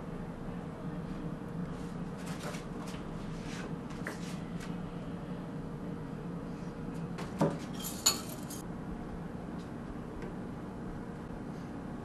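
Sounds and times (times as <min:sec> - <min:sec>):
metal spoon clinking: 0:07.8 - 0:08.6.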